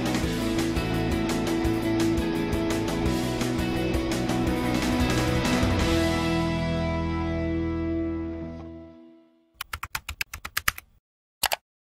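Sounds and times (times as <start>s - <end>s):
background music chord: 0.0s - 9.5s
keyboard typing clicks: 9.6s - 11.6s.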